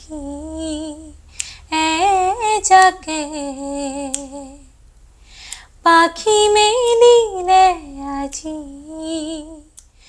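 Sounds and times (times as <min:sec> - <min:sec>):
woman singing unaccompanied: 0:00.0 - 0:04.8, 0:05.8 - 0:09.8.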